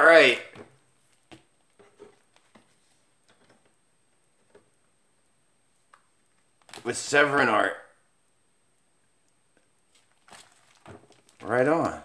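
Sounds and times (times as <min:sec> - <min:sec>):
comic books rustling in plastic sleeves: 0:00.1 - 0:04.8, 0:06.4 - 0:07.1, 0:09.8 - 0:12.0.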